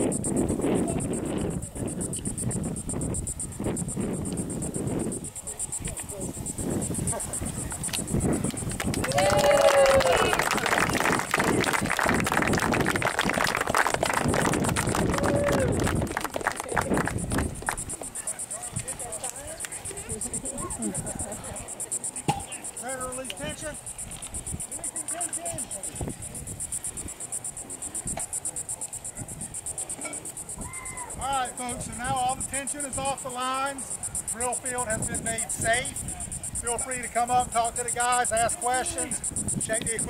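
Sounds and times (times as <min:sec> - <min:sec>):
insects chirring: 0:00.0 - 0:40.0
faint distant voices: 0:13.3 - 0:40.0.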